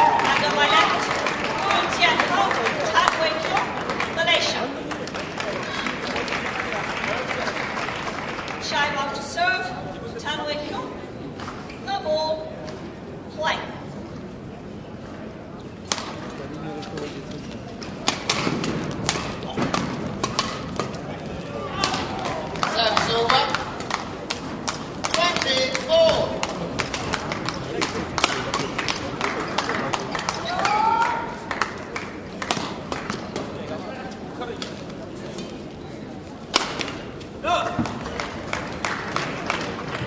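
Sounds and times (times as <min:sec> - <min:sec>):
voices: 0:00.0 - 0:13.8
racket hitting shuttlecock: 0:15.8 - 0:16.3, 0:17.8 - 0:21.0, 0:21.8 - 0:30.8, 0:32.4 - 0:33.6, 0:36.5 - 0:37.1.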